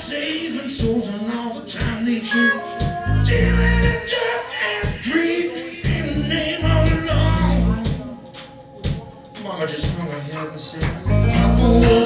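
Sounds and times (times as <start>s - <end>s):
person singing: 0.0s - 10.0s, 10.8s - 12.0s
drum beat: 0.0s - 12.0s
keyboards: 0.0s - 12.0s
electric guitar: 10.8s - 12.0s.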